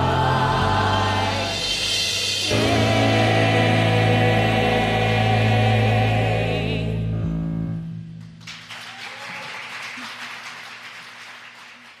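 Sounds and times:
voices singing held chord: 0.0 - 7.2
audience applause: 8.4 - 12.0.

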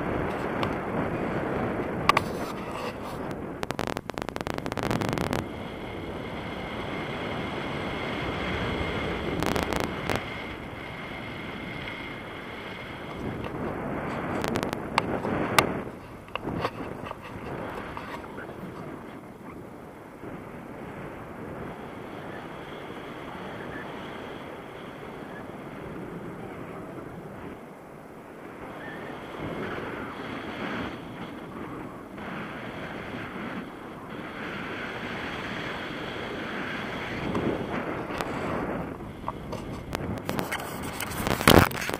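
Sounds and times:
wind buffeting microphone: 0.0 - 41.9
sharp clicks: 3.6 - 5.4.

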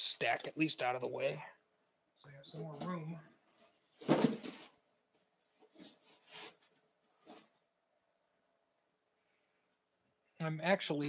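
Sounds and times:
paper rustles and knocks: 4.0 - 4.7.

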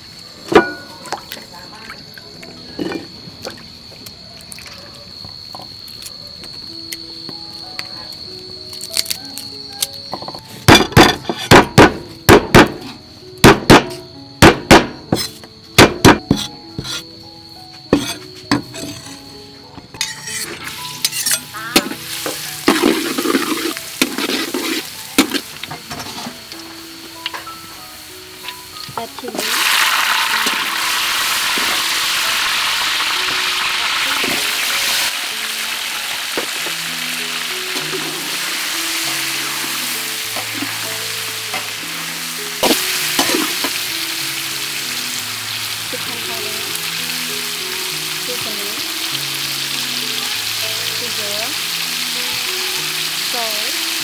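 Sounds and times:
food sizzling in wok: 7.3 - 54.0
spatula knocking on wok: 13.4 - 17.0.

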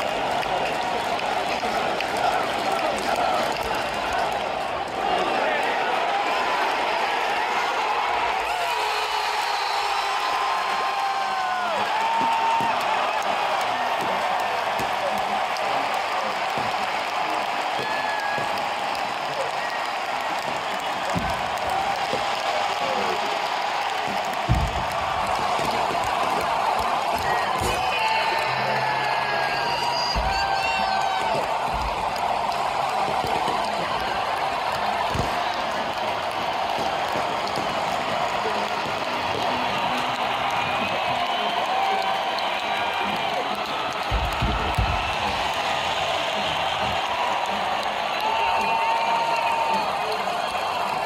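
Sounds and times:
crowd cheering and whooping: 0.0 - 51.0.

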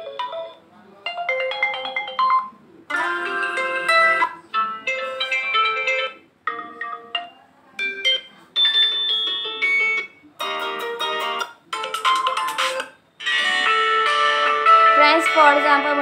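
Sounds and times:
phone ringtone snippets: 1.2 - 11.2.

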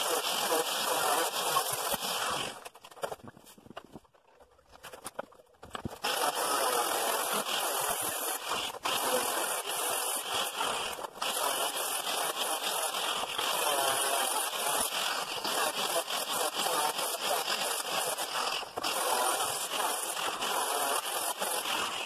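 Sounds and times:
angle grinder cutting steel: 0.0 - 2.7, 6.0 - 22.0.

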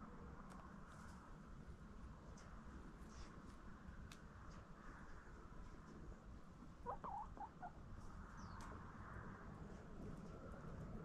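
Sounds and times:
hens clucking: 6.8 - 7.8.

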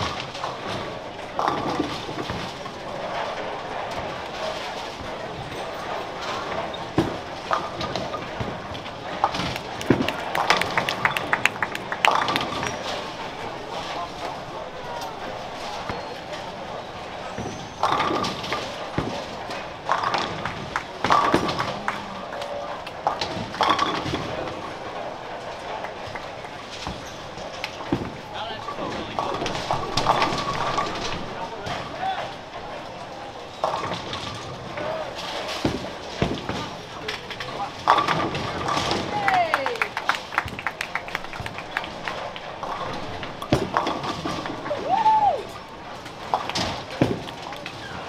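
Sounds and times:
steady hubbub: 0.0 - 48.0
bowling ball rolling down lane: 0.1 - 14.4, 15.2 - 31.9, 33.6 - 44.8
sharp knocks and clatter: 17.3 - 44.7, 45.6 - 48.0.

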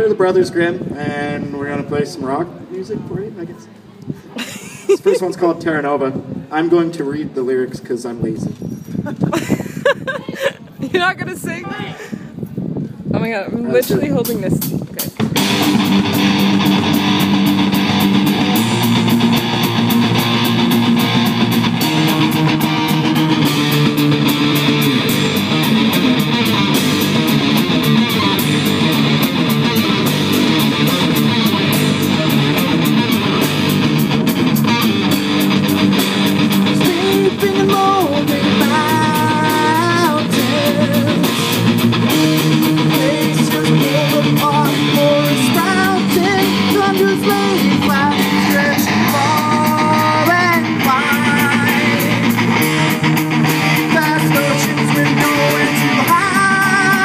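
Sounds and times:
bass guitar: 13.2 - 57.0
distorted electric guitars: 13.8 - 57.0
drum kit: 13.8 - 57.0.

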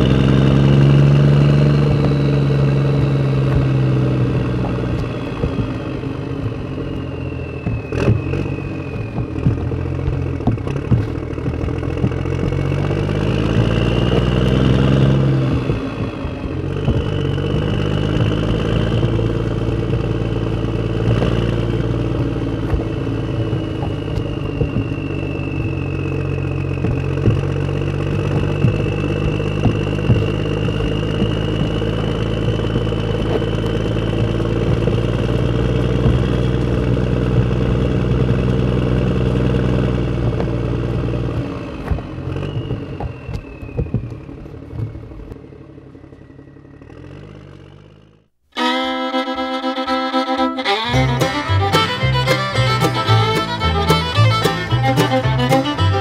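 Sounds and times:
clatter: 0.0 - 48.3.

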